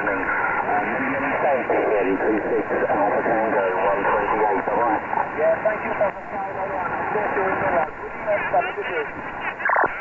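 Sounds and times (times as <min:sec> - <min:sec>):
static hiss: 0:00.0 - 0:10.0
voice over radio speaker: 0:00.0 - 0:10.0.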